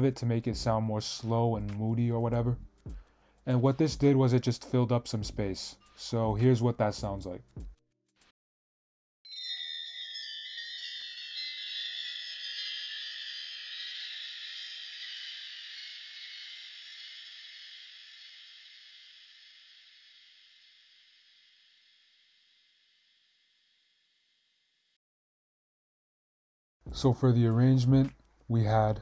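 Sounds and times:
slow shimmering chimes: 9.3s - 23.1s.

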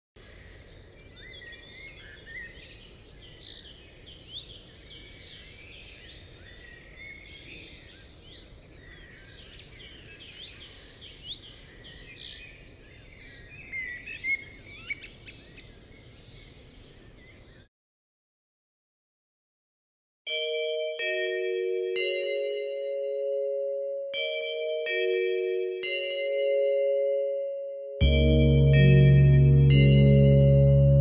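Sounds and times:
birds chirping and trilling: 0.2s - 17.7s.

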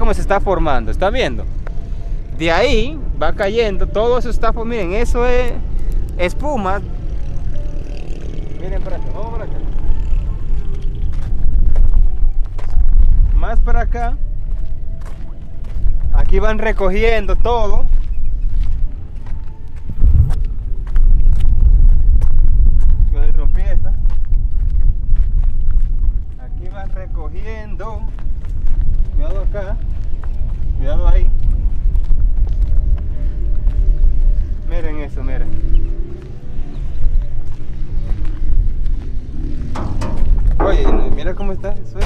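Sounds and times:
wind buffeting microphone: 0.0s - 42.0s
man's voice: 40.6s - 42.0s.

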